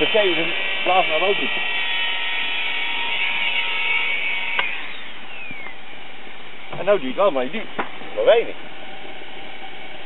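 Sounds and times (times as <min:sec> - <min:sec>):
electric fan whining: 0:00.0 - 0:10.0.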